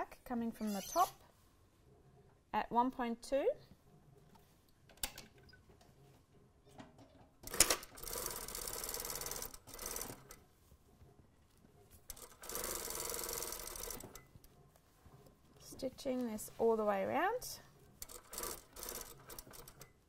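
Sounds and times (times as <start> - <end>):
industrial sewing machine stitching: 12.1 - 14.1, 18.0 - 19.9.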